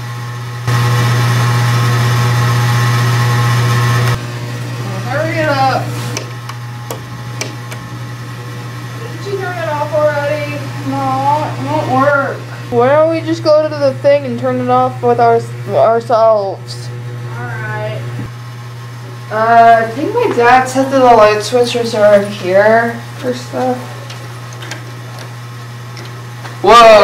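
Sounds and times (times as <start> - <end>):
loud electrical buzz: 0.0 - 27.0
constant low hum: 4.1 - 26.6.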